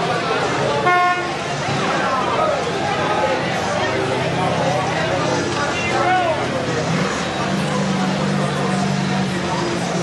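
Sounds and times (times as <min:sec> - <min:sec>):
crowd chatter: 0:00.0 - 0:10.0
passing traffic: 0:00.0 - 0:10.0
car horn beep: 0:00.8 - 0:01.3.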